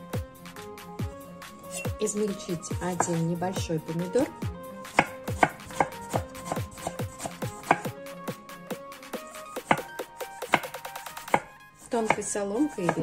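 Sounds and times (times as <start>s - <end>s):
background music: 0.0s - 13.0s
knife chopping on wooden board: 1.7s - 2.0s, 2.9s - 3.3s, 4.3s - 8.0s, 9.2s - 13.0s.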